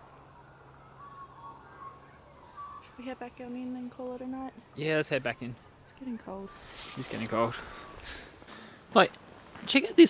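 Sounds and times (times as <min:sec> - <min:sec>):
faint whistled tones: 0:00.0 - 0:08.5
faint low hum: 0:00.0 - 0:10.0.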